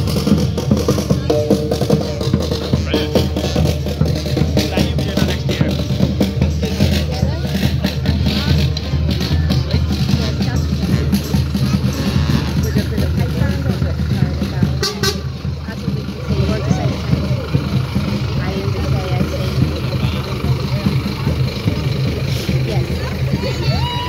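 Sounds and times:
crowd voices: 0:00.0 - 0:24.0
lorry diesel engine passing: 0:00.0 - 0:24.0.

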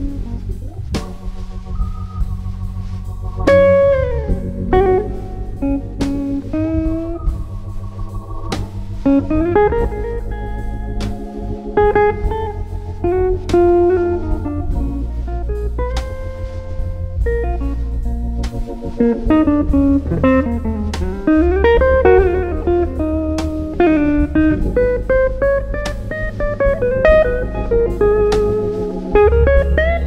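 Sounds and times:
organ chords: 0:00.0 - 0:30.0
electric guitar blues solo: 0:03.4 - 0:08.1, 0:08.8 - 0:30.0.

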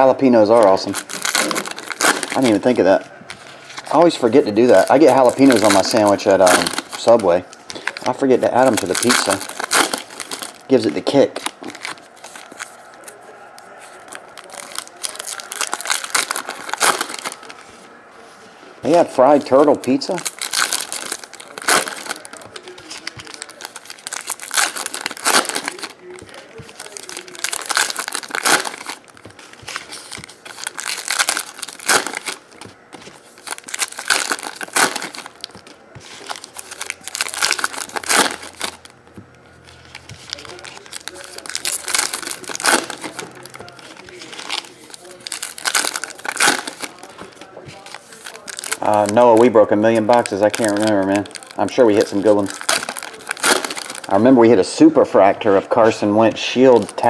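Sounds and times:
foil wrappers tearing and crinkling: 0:00.0 - 0:18.0, 0:18.8 - 0:38.9, 0:39.6 - 0:57.0.

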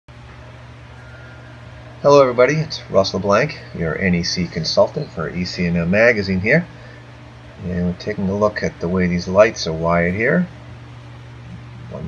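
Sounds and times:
low hum: 0:00.1 - 0:12.0
faint hiss: 0:00.3 - 0:12.0.

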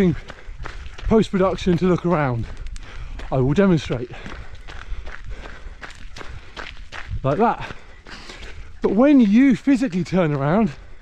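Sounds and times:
running footsteps on gravel: 0:00.0 - 0:11.0.

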